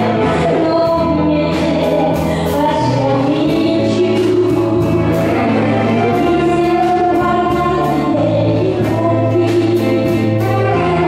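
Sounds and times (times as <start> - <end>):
group of voices singing: 0.0 - 11.0
live band music: 0.0 - 11.0
saxophones: 0.0 - 11.0.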